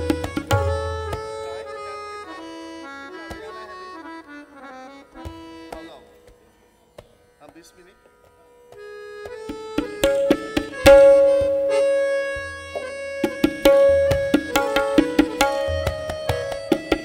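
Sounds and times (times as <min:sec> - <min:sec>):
tabla strokes: 0:00.0 - 0:02.0, 0:05.2 - 0:17.0
harmonium melody: 0:00.0 - 0:17.0.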